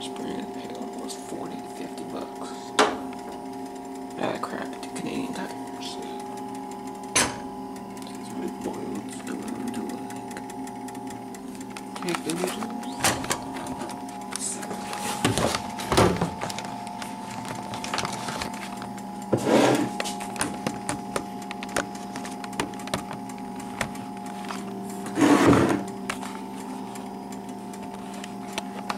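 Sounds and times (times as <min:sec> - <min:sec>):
steady mechanical hum: 0:00.0 - 0:28.9.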